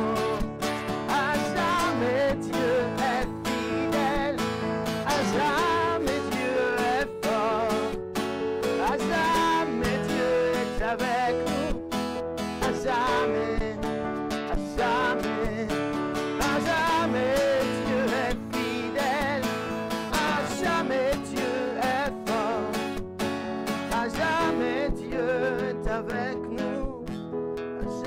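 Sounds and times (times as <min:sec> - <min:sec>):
acoustic guitar strumming: 0:00.0 - 0:28.0
electronic keyboard: 0:00.0 - 0:28.0.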